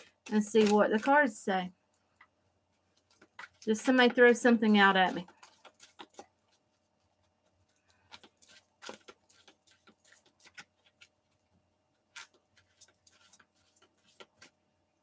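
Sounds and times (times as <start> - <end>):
cards being shuffled: 0.0 - 1.4, 3.0 - 6.7, 7.6 - 11.2, 12.1 - 14.6.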